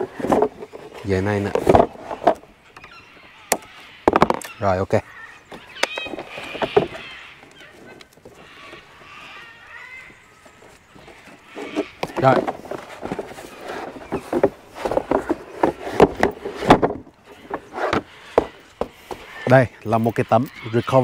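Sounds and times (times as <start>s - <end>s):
plastic boards knocking and scraping: 0.0s - 2.9s, 3.5s - 4.6s, 5.5s - 7.2s, 11.0s - 19.6s.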